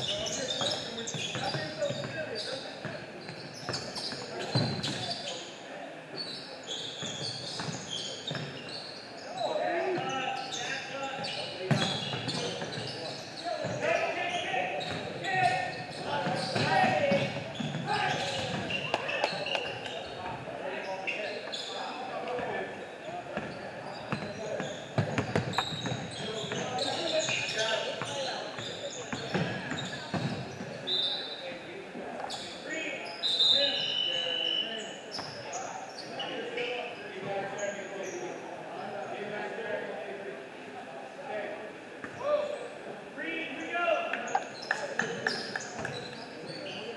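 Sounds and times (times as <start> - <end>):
sneaker squeaks: 0.0 - 22.0, 23.0 - 31.5, 32.2 - 38.4, 44.2 - 46.9
basketball bouncing on court: 15.9 - 19.5, 25.0 - 26.7, 29.1 - 30.5.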